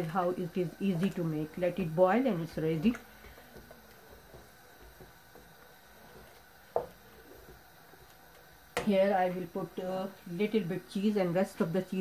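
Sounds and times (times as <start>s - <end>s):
thick sauce simmering in pot: 0.6s - 9.8s.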